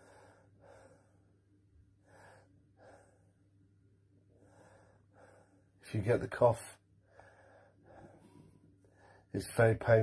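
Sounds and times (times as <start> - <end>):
man breathing faintly: 0.0 - 10.0
man speaking: 5.8 - 6.8, 9.3 - 10.0.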